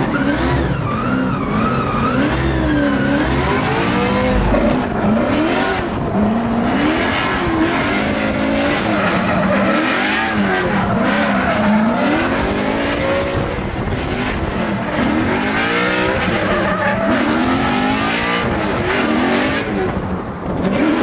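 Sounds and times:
car engine revving: 0.1 - 20.0.

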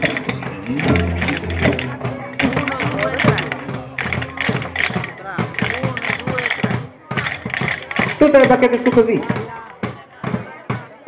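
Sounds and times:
children's voices: 0.0 - 8.2
drumstick taps: 0.0 - 10.8.

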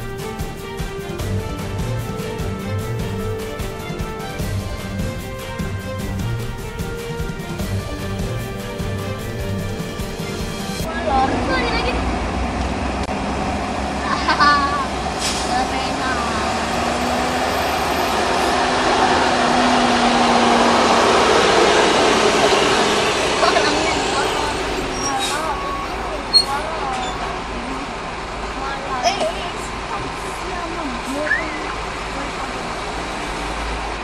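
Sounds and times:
heavy diesel vehicles crawling: 0.0 - 34.0.

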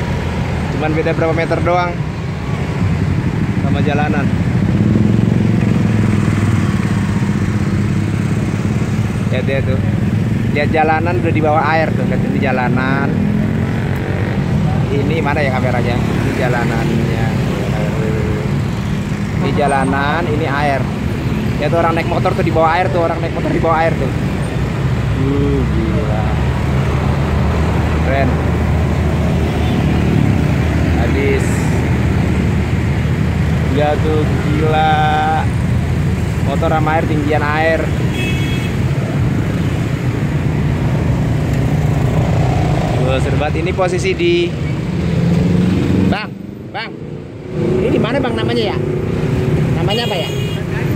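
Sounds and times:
road traffic: 0.0 - 50.9
vehicle engines running close by: 0.0 - 50.9.

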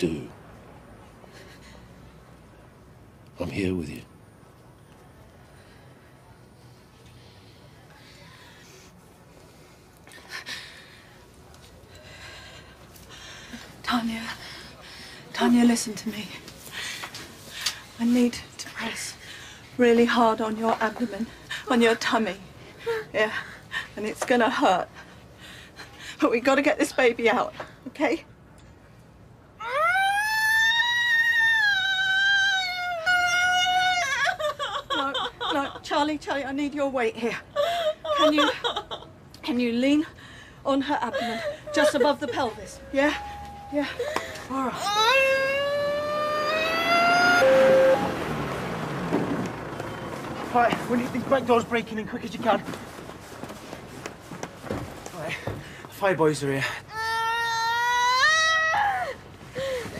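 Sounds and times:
woman screaming in pain: 29.6 - 35.2, 43.0 - 47.6, 56.9 - 59.9.

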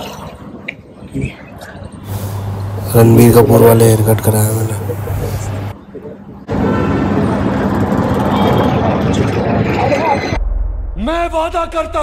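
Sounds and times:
steady traffic hum: 0.0 - 10.9
vehicle engines running: 1.9 - 10.4.

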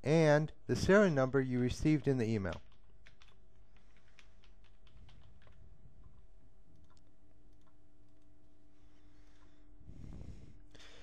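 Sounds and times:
computer keyboard typing: 1.6 - 8.5.

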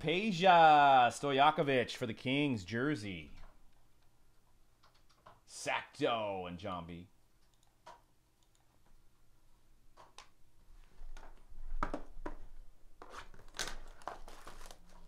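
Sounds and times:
plastic wrap crinkling and tearing: 13.0 - 15.0.

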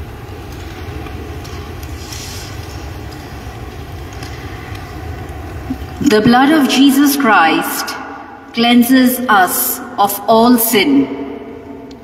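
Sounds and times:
low rumble background noise: 0.0 - 12.0.

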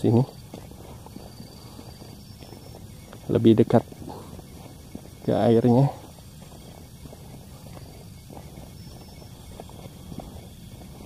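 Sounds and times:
footsteps on concrete: 0.0 - 11.0
low outdoor background: 0.0 - 11.0.

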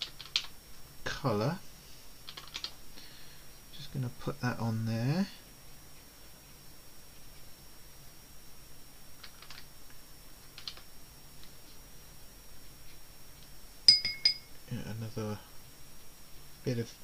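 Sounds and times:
faint high whine: 0.0 - 17.0
sharp clink with ring: 13.9 - 14.6.

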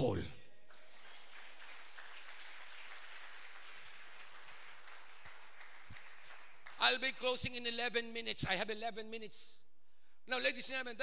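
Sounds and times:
crowd applauding: 0.7 - 7.0.

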